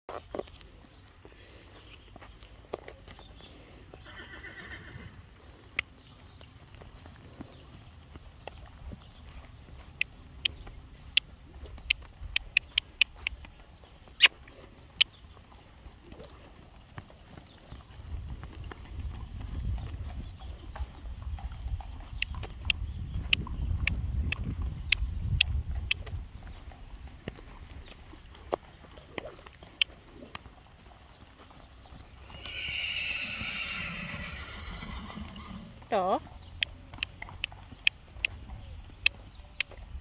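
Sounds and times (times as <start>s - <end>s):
horse hoofbeats clip-clop: 0.1s - 40.0s.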